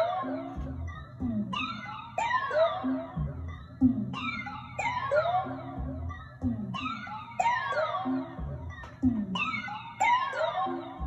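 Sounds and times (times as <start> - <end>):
low kick-like thumps: 0.6 - 1.6, 5.8 - 6.9, 8.4 - 9.4.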